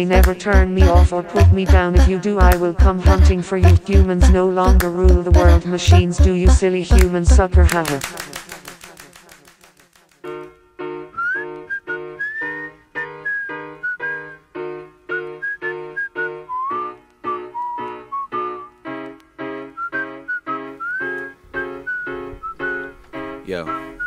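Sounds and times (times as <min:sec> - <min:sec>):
whistled melody: 0:11.0 - 0:18.8, 0:19.5 - 0:24.0.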